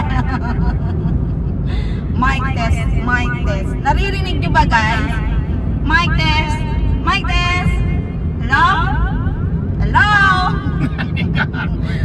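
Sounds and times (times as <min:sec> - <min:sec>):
car cabin rumble: 0:00.0 - 0:12.0.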